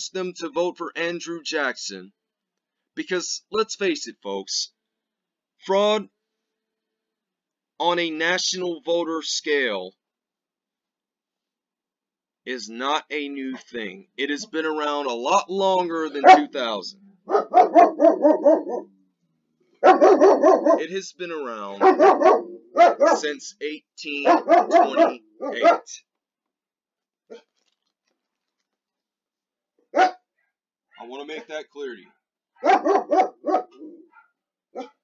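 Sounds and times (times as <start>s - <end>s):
man speaking: 0.0s - 2.1s, 3.0s - 4.7s, 5.6s - 6.1s, 7.8s - 10.0s, 12.5s - 17.0s, 20.7s - 22.2s, 22.9s - 26.0s, 31.0s - 32.1s
dog barking indoors: 16.2s - 16.5s, 17.2s - 18.9s, 19.8s - 20.9s, 21.8s - 23.3s, 24.2s - 26.0s, 29.9s - 30.3s, 32.0s - 35.0s.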